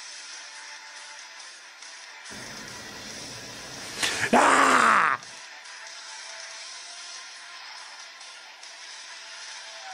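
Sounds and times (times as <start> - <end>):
harsh groaning voice: 4.2 - 5.3.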